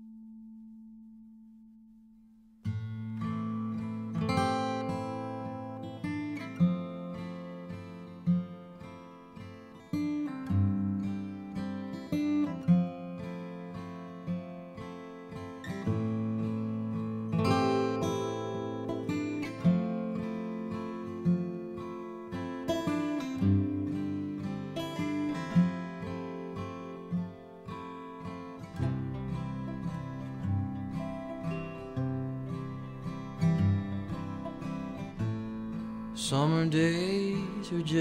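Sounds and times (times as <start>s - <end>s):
acoustic guitar strumming chords: 0.0s - 38.0s.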